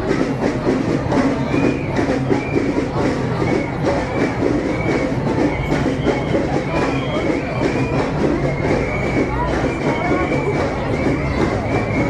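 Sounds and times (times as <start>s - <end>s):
crowd din: 0.0s - 12.0s
slow-moving vehicles: 0.0s - 12.0s.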